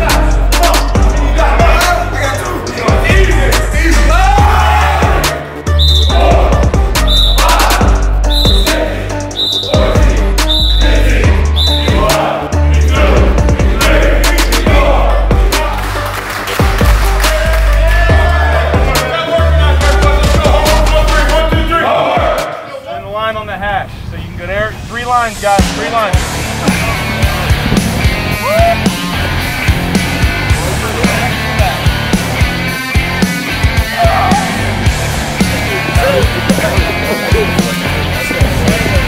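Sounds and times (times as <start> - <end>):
hip hop music with deep bass: 0.0 - 23.2, 24.3 - 39.0.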